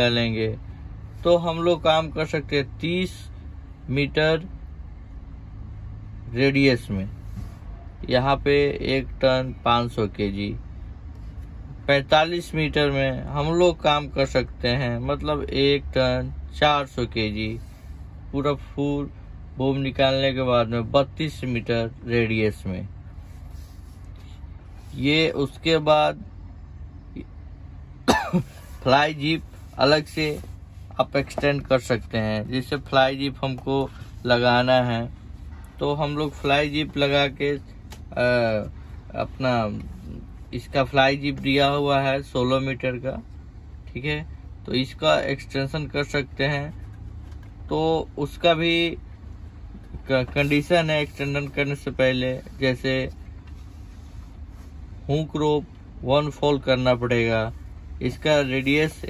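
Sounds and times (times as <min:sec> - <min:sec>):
low background rumble: 0:00.0 - 0:59.0
person speaking: 0:11.8 - 0:26.3, 0:28.3 - 0:43.3, 0:49.7 - 0:54.3, 0:55.1 - 0:59.0
man clearing throat: 0:28.0 - 0:28.8.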